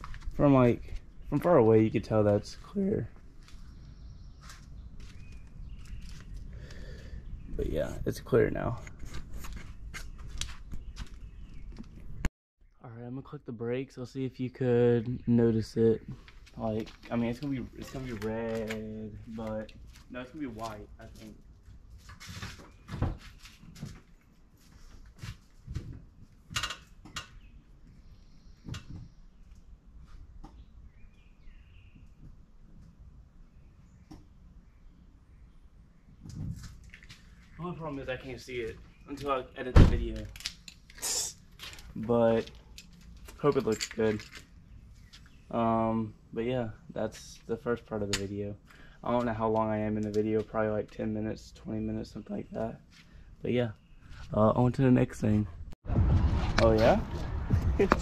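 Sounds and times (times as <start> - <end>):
low rumble: 55.6 - 58.0.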